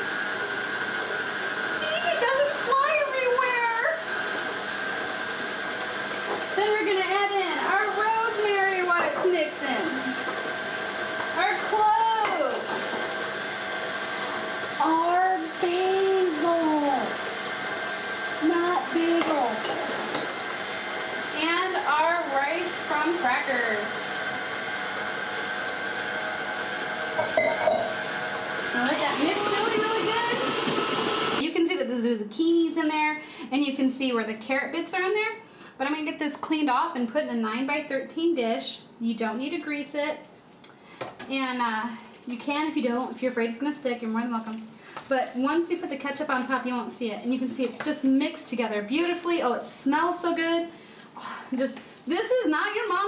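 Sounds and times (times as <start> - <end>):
stand mixer motor whine: 0.0 - 31.4.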